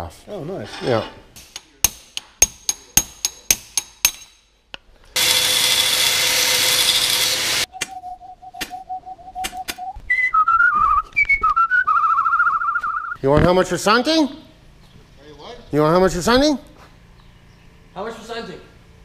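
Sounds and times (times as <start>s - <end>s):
person whistling: 7.7s - 13.2s.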